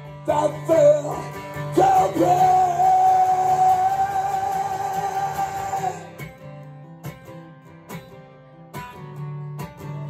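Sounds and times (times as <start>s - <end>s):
acoustic guitar: 0.0s - 10.0s
man singing high note: 0.3s - 6.2s.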